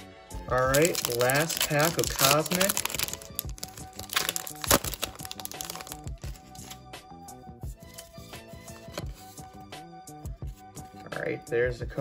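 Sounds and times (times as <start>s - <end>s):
foil pack crinkling and tearing: 0.5s - 6.8s
music with steady beat: 5.2s - 11.0s.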